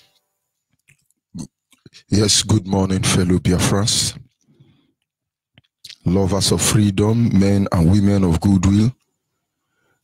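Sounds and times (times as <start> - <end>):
mouth clicks and smacks: 0.7 - 2.0, 4.3 - 6.0.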